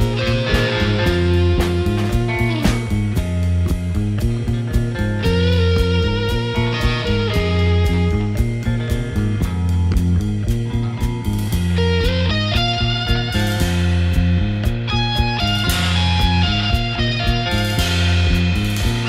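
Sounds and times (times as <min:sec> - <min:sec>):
instrumental psychedelic rock: 0:00.0 - 0:19.0.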